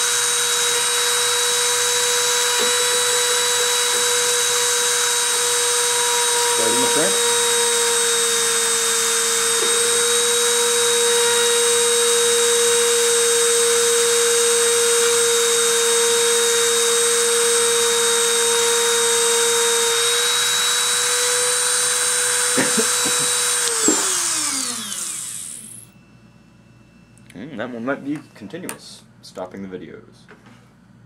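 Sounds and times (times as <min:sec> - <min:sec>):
rotary tool high whine: 0:00.0 - 0:27.1.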